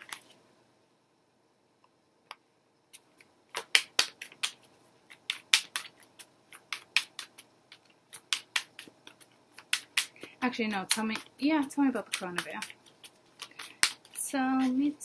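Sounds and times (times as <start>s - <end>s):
cards being shuffled: 3.0s - 15.0s.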